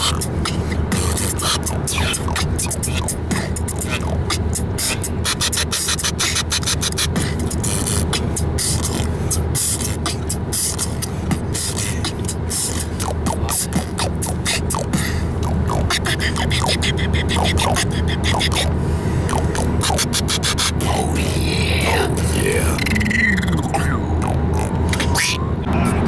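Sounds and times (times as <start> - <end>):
car road hum: 0.0 - 26.0
mouth beatboxing: 0.0 - 26.0.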